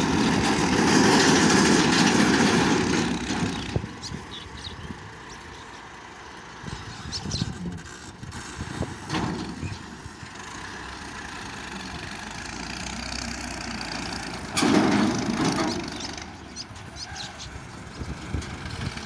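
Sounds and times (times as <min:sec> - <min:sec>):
tractor diesel engine running: 0:00.0 - 0:19.0
trolley moving over sand: 0:00.0 - 0:19.0.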